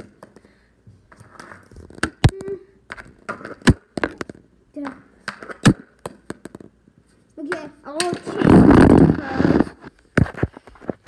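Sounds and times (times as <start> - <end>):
hockey stick striking puck: 2.9 - 6.6, 7.4 - 9.0.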